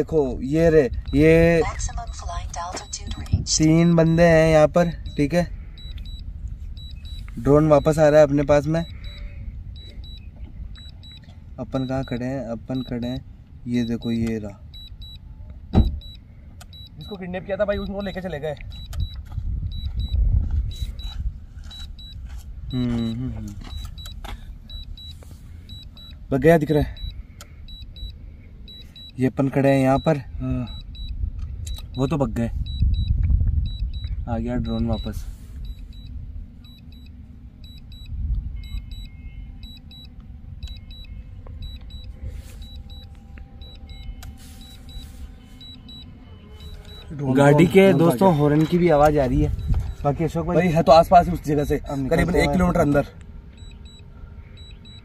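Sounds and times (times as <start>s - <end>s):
steady low rumble: 0.0s - 46.2s, 46.8s - 55.0s
faint high beeps: 0.0s - 55.0s
wind buffeting microphone: 18.6s - 22.8s, 30.3s - 36.8s, 48.8s - 50.4s.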